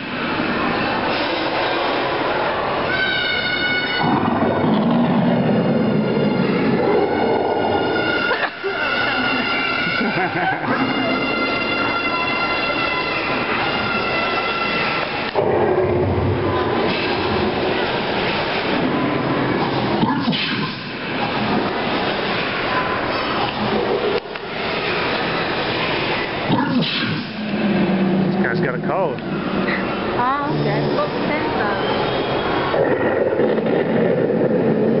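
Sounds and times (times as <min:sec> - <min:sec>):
low rumbling dinosaur roar: 0:04.0 - 0:07.8, 0:32.7 - 0:35.0
children screaming and shouting: 0:06.5 - 0:15.3.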